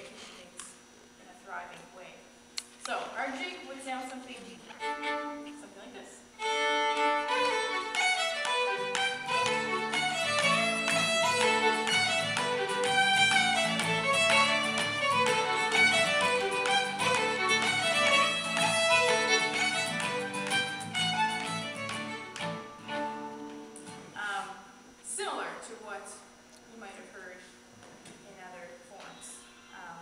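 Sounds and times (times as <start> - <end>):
fiddle tune: 4.8 - 5.6, 6.4 - 23.9
acoustic guitar strumming: 6.5 - 24.2.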